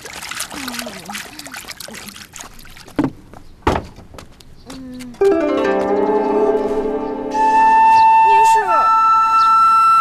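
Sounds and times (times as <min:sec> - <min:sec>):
wooden doors knocking open: 0:03.0 - 0:04.2.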